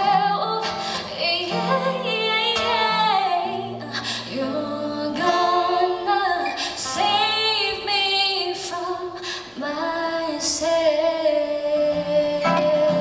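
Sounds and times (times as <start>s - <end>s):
acoustic guitar: 0.0s - 13.0s
woman singing a slow ballad: 0.0s - 13.0s.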